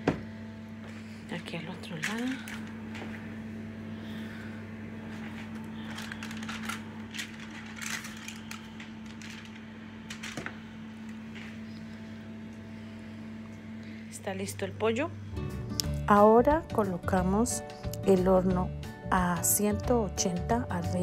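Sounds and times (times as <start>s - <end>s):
low electrical hum: 0.0s - 21.0s.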